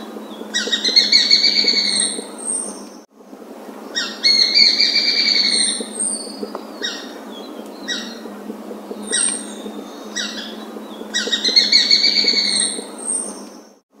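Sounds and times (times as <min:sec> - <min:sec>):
harsh bird calls: 0:00.0 - 0:03.0, 0:04.0 - 0:13.8
bird chattering call: 0:08.9 - 0:13.4.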